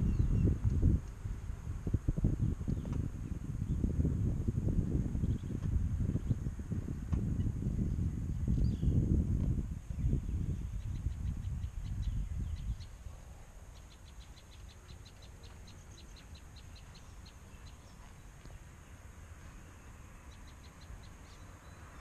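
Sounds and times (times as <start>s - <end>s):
bird chirping: 0.0s - 0.6s, 9.9s - 22.0s
wind buffeting microphone: 0.0s - 22.0s.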